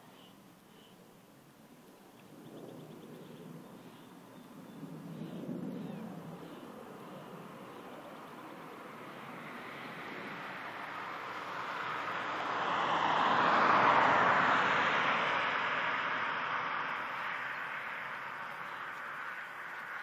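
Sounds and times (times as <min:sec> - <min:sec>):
fighter jet passing overhead: 0:02.3 - 0:20.0.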